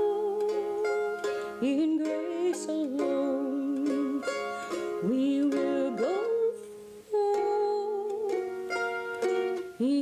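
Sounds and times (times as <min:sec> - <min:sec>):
mandolin chords: 0:00.0 - 0:10.0.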